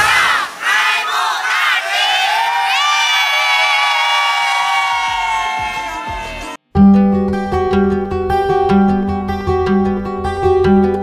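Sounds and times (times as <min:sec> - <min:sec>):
group of people cheering and shouting: 0:00.0 - 0:06.6.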